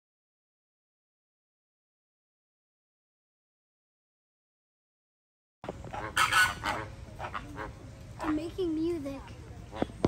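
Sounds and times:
flamingos honking: 5.6s - 8.6s.

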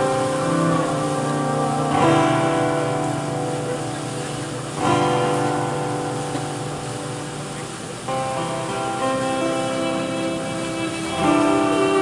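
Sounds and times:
acoustic guitar: 0.0s - 12.0s
sustained lead notes: 0.0s - 12.0s.

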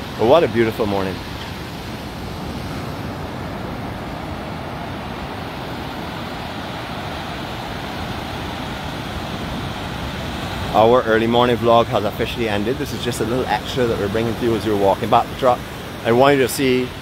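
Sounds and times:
ocean surf breaking: 0.0s - 17.0s.

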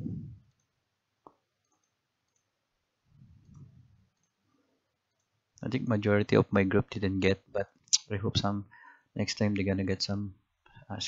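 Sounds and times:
computer mouse click: 1.3s - 2.5s.

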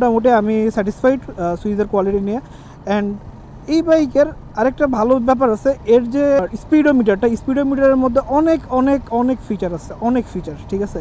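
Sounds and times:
man talking: 0.0s - 11.0s
motorcycle riding noise: 0.0s - 11.0s.

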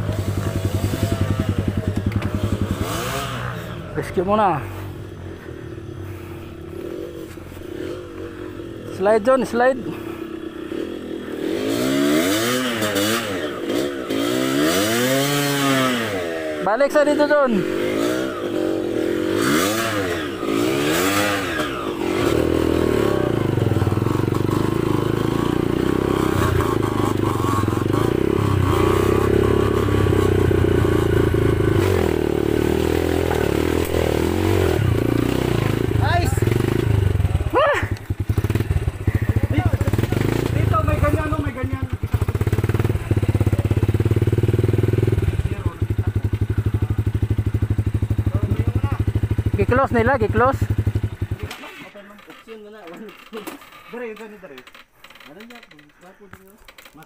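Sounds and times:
dirt bike engines revving: 0.0s - 57.0s.

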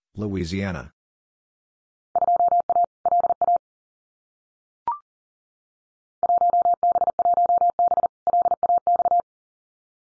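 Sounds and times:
morse code tone: 6.2s - 9.2s.

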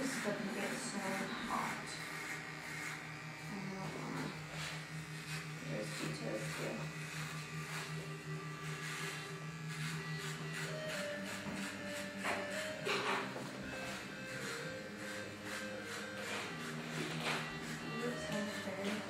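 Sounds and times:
electric hair clippers buzzing: 0.0s - 19.0s.

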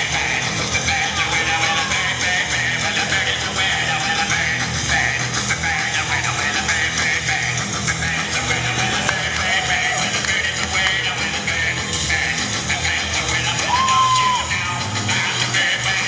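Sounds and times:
upbeat dance music with singing: 0.0s - 16.0s.

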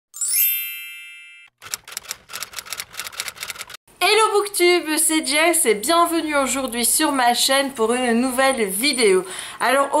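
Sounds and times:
shimmering chime: 0.2s - 1.5s
typewriter key clicks: 1.6s - 3.8s.

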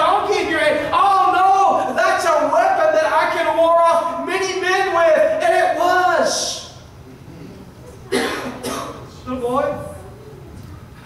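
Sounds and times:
man coughing: 8.1s - 9.0s.

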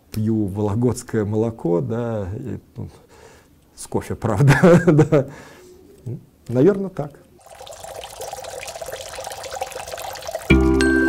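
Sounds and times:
trickle of running water: 7.4s - 10.6s.

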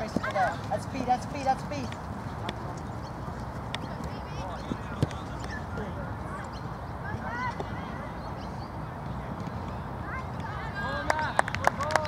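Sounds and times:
distant players calling: 0.0s - 12.0s
low background noise: 0.0s - 12.0s.

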